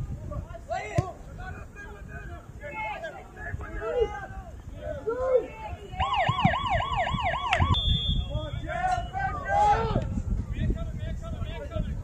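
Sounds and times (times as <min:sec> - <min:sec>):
voices calling out: 0:00.0 - 0:10.3.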